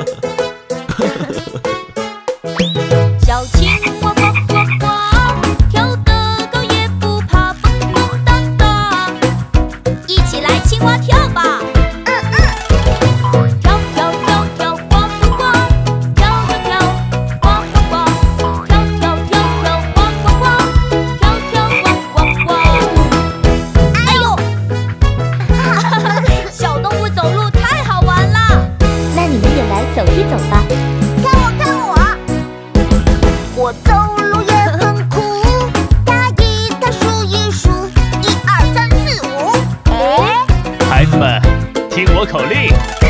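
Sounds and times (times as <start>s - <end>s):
children's song music: 0.0s - 43.0s
cartoon frog croaking: 3.6s - 4.9s, 12.1s - 12.8s, 21.6s - 23.1s.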